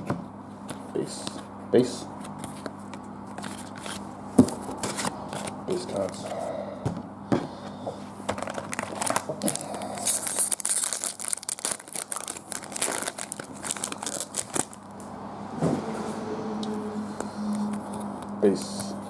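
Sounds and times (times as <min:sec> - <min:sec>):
foil pack crinkling and tearing: 0:08.3 - 0:14.8.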